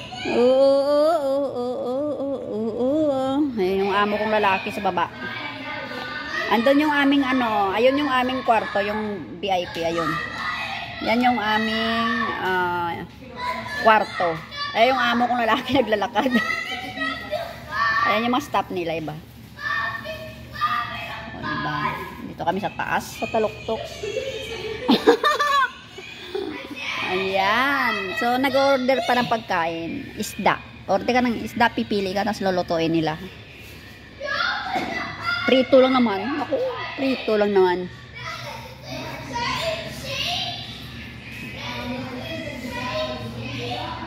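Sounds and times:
young child's high-pitched voice: 0:00.0 - 0:18.9, 0:19.5 - 0:32.2, 0:34.2 - 0:44.0.

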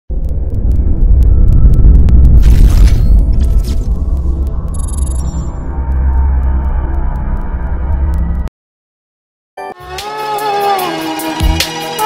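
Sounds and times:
deep cinematic rumble: 0:00.1 - 0:08.5.

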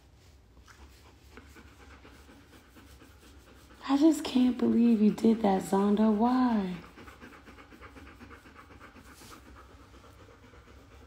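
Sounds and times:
dog panting: 0:00.1 - 0:11.0.

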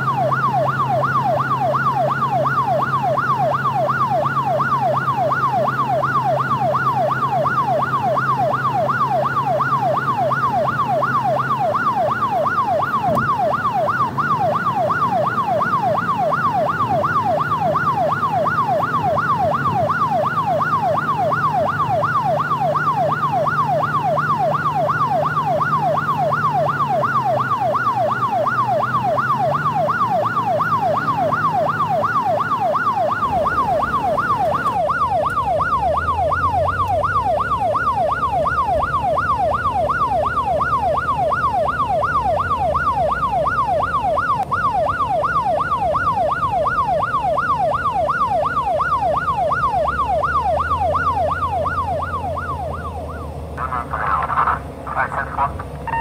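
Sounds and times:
electronic siren yelping: 0:00.0 - 0:56.0.

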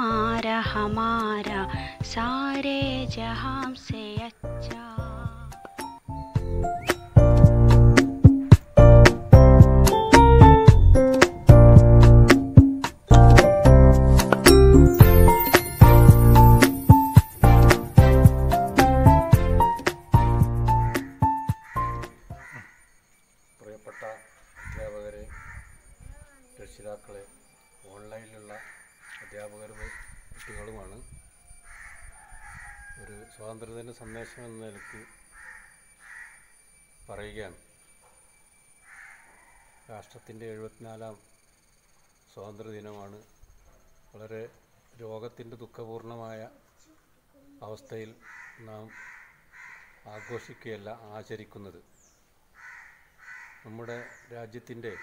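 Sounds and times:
bird calling: 0:03.9 - 0:07.3, 0:20.8 - 0:38.2, 0:38.8 - 0:41.2, 0:46.3 - 0:50.9, 0:51.8 - 0:55.0
crow cawing: 0:20.8 - 0:23.0, 0:23.8 - 0:26.0, 0:28.4 - 0:30.9, 0:31.6 - 0:36.6, 0:38.8 - 0:39.9, 0:48.2 - 0:50.8, 0:52.5 - 0:55.0.

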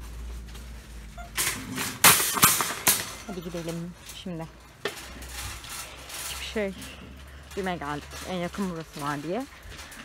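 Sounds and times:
shopping cart rattling and clanking: 0:00.0 - 0:10.0.

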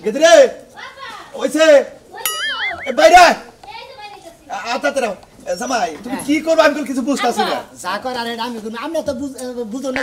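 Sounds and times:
wobbling whistle sound effect: 0:02.3 - 0:03.2.

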